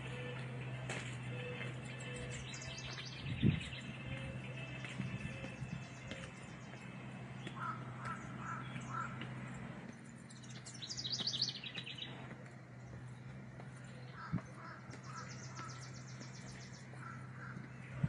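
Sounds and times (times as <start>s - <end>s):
crow cawing: 7.6s - 9.3s, 14.1s - 15.9s, 16.9s - 17.7s.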